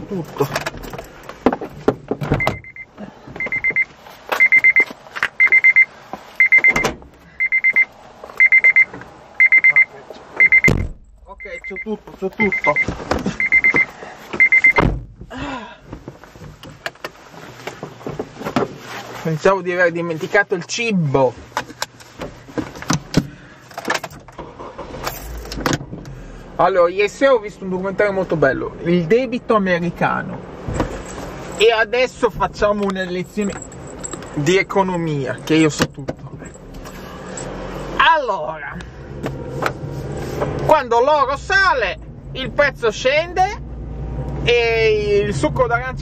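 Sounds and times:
electronic beeper beeping: 2.4 - 10.8, 11.4 - 14.8
handling knocks and rustling: 15.9 - 19.5, 21.4 - 26.0, 30.6 - 31.6, 32.3 - 34.4.

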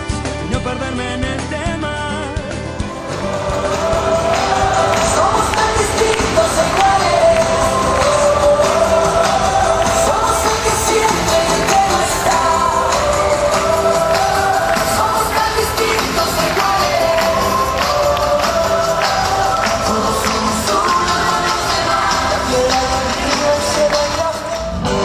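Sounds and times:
instrumental accompaniment with beat: 0.0 - 25.0
children's choir singing: 2.9 - 24.6.

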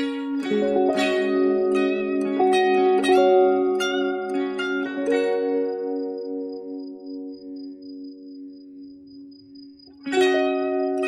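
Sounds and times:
electric guitar chord ringing: 0.0 - 11.0.

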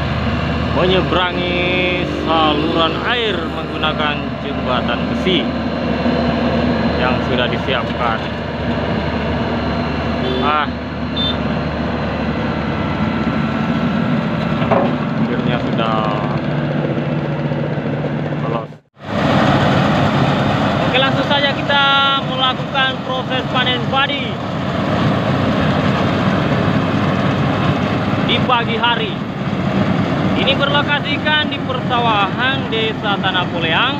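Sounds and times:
diesel engine running loudly: 0.0 - 33.9.

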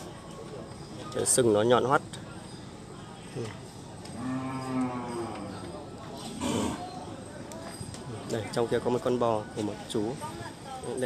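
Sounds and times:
cow mooing: 4.2 - 5.6.

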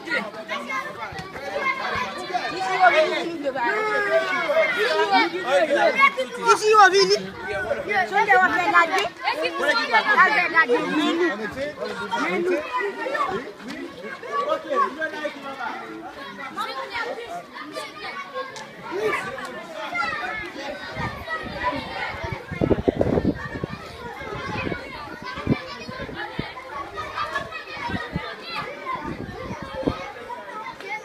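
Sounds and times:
children chattering and calling out: 0.0 - 31.0.

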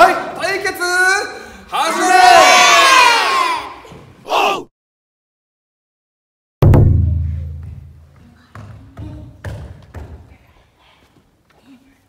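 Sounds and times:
group shouting together: 1.7 - 4.7
single shout: 1.7 - 4.7.

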